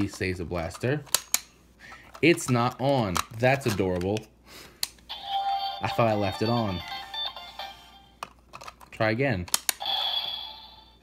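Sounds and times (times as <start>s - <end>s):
sharp plastic clicks: 1.0s - 1.5s.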